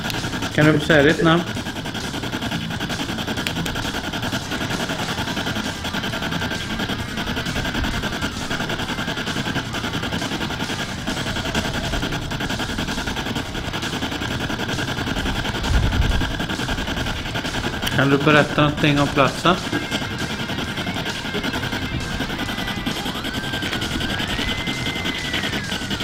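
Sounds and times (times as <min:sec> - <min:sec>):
radio scanning chopped static: 0:00.0 - 0:26.0.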